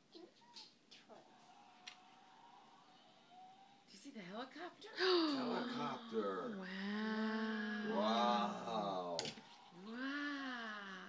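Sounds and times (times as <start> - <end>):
person making wordless vocal sounds: 5.0 - 9.2.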